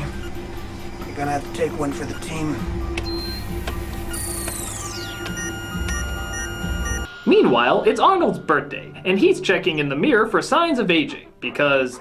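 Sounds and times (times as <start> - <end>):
whine falling in pitch: 3.0 - 7.1
short electronic beeps: 3.0 - 7.2.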